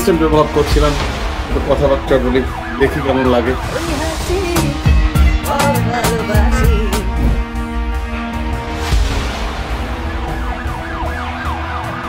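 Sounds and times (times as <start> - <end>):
music with low drone: 0.0 - 12.0
siren wailing: 0.5 - 7.2, 9.4 - 12.0.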